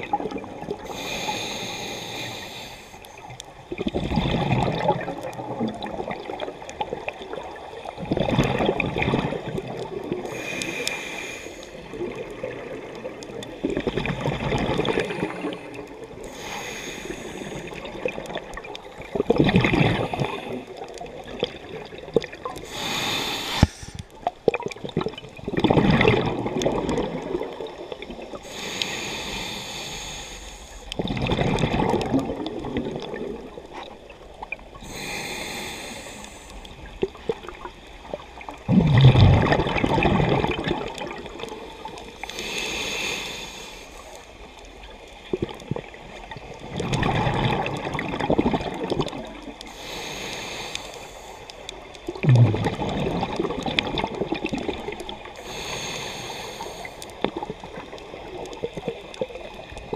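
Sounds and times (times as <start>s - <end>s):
exhaled bubbles rushing: 0.0s - 0.8s, 3.7s - 10.3s, 11.8s - 15.8s, 17.8s - 22.6s, 23.6s - 28.4s, 30.9s - 34.6s, 36.8s - 42.2s, 45.3s - 49.6s, 52.0s - 55.4s
regulator hissing inhale: 0.9s - 3.2s, 10.2s - 11.9s, 16.2s - 17.8s, 22.6s - 24.1s, 28.4s - 31.0s, 34.8s - 36.8s, 41.6s - 44.5s, 49.6s - 51.6s, 55.3s - 57.2s.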